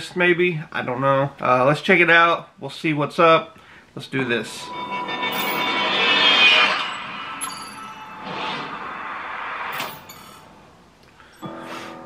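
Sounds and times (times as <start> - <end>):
faint music: 4.0 - 8.6
sharp metallic hits: 4.2 - 10.9
whoosh: 4.4 - 10.9.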